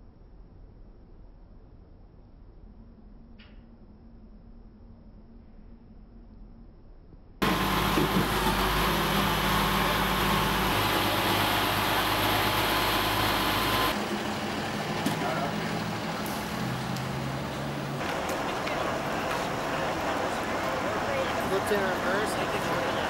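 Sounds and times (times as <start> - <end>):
vehicle engine running: 7.4 - 23.0
faint voices: 18.0 - 23.0.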